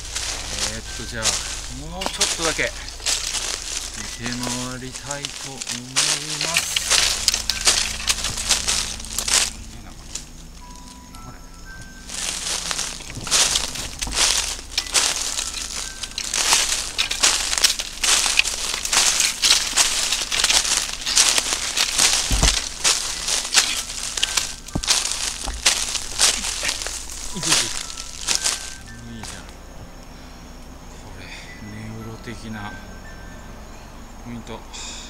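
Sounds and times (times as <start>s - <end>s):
footsteps crunching dry leaves: 0.0s - 30.6s.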